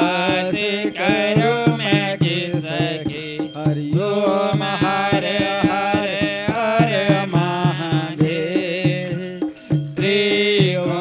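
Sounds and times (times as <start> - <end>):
instrumental accompaniment: 0.0 - 11.0
percussive beat: 0.0 - 11.0
person singing devotional hymn: 0.0 - 11.0.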